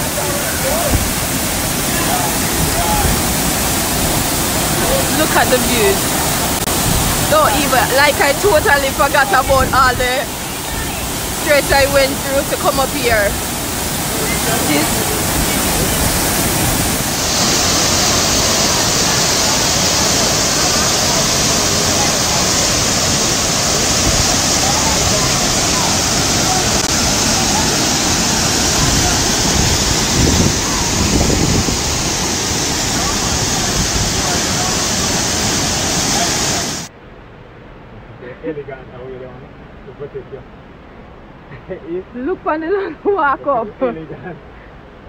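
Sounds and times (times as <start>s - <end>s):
waterfall pouring onto rock: 0.0s - 9.4s, 10.1s - 36.9s.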